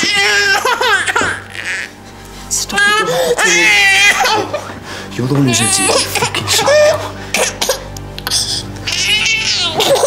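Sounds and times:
baby crying: 0:00.0 - 0:02.0, 0:02.7 - 0:04.7, 0:05.4 - 0:10.0.

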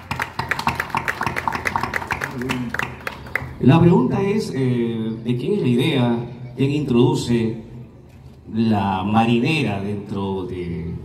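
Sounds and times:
small group applauding: 0:00.0 - 0:03.7.

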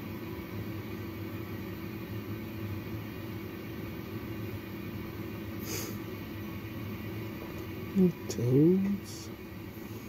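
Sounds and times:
incubator machine hum and hiss: 0:00.0 - 0:10.0.

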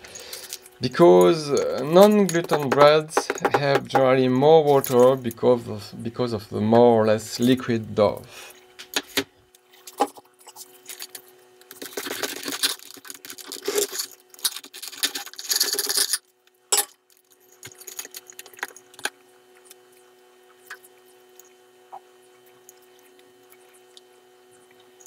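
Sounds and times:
faint steady hum: 0:00.0 - 0:25.0
crackly rustle of bread crust: 0:09.6 - 0:15.6.

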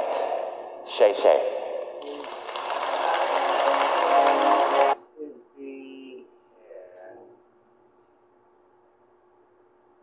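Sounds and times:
audience applause: 0:02.0 - 0:05.0
music playing: 0:02.7 - 0:05.0.

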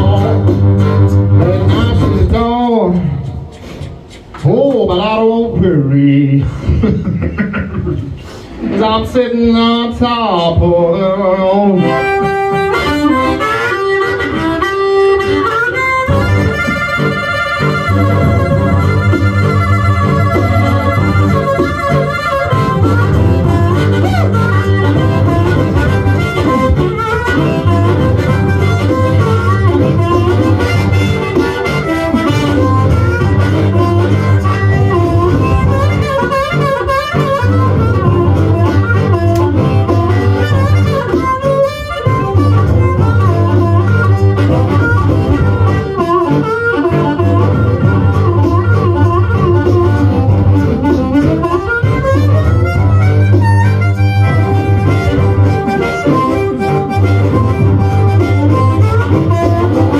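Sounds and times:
amplified blues harmonica solo: 0:00.0 - 0:04.4, 0:10.4 - 0:59.9
low held notes: 0:00.0 - 0:59.9.

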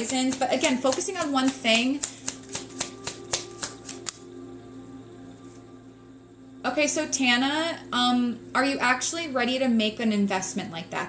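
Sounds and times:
cards being shuffled: 0:00.0 - 0:04.2
soft background music: 0:00.0 - 0:11.0.

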